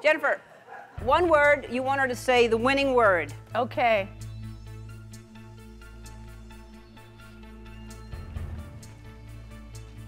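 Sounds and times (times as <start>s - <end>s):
background music with steady beat: 1.0s - 10.0s.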